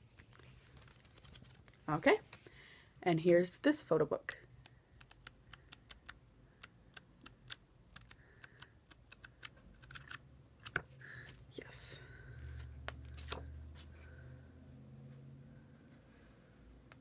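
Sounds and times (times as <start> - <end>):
paper rustle: 0.0 - 2.5
photo book pages flipping: 0.0 - 2.5, 12.9 - 13.5.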